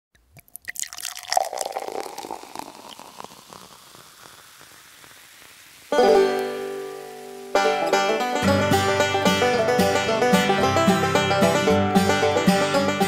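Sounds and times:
liquid pouring: 0:00.1 - 0:08.4
crackle of small clicks: 0:02.3 - 0:07.6.

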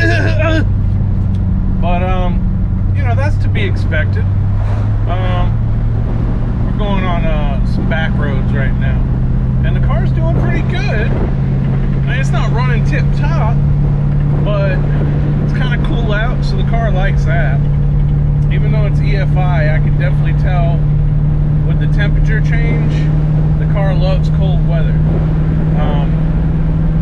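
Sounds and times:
car engine and road noise: 0:00.0 - 0:27.0.

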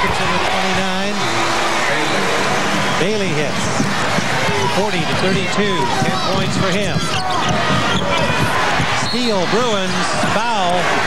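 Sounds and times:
arena crowd noise: 0:00.0 - 0:11.0
voices shouting in crowd: 0:00.0 - 0:11.0.

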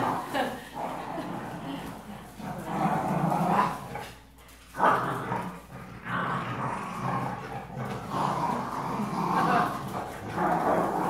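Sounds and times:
dogs growling in play: 0:00.0 - 0:11.0.

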